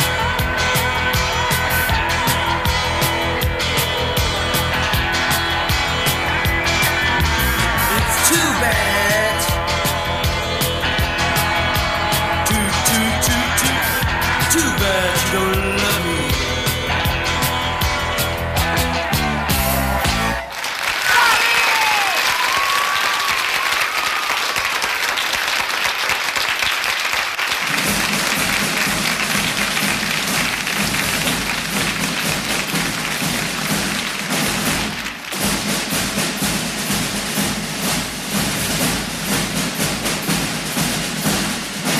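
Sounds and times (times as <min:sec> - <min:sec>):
audience applauding and cheering: 0:00.0 - 0:11.6, 0:19.6 - 0:36.5
music playing: 0:00.0 - 0:20.6, 0:27.6 - 0:41.9.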